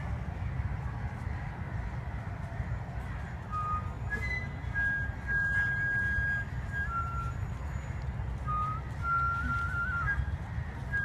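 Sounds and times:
flute playing slow melody: 3.5 - 11.0.

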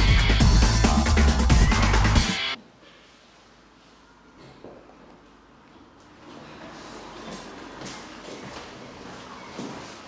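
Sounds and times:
footsteps on hard floor: 6.2 - 10.0.

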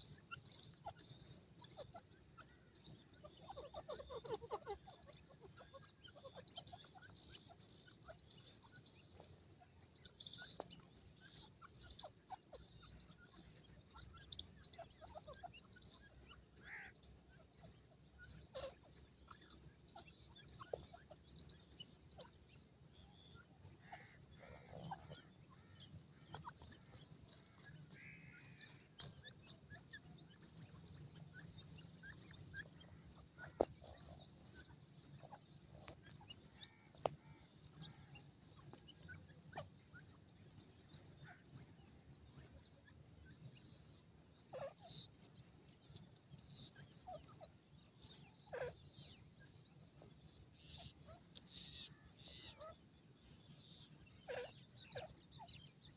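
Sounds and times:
chicks peeping: 0.0 - 55.9
lower bird calls and clicks: 0.0 - 55.9.

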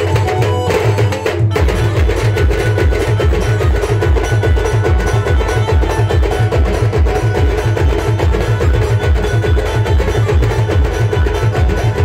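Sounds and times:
fast drum beats: 0.0 - 12.0
held melody notes: 0.0 - 12.0.

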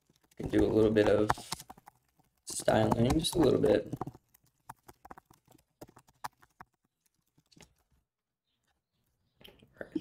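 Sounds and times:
computer keyboard keystrokes: 0.0 - 7.8.

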